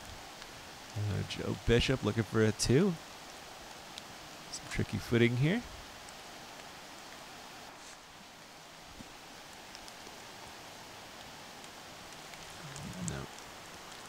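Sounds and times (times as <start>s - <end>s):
woodland ambience hiss: 0.0s - 14.0s
brief voice: 12.6s - 13.3s.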